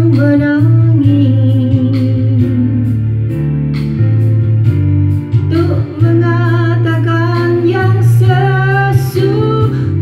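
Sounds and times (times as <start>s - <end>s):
woman singing into a microphone: 0.0s - 3.3s, 5.3s - 10.0s
backing music: 0.0s - 10.0s.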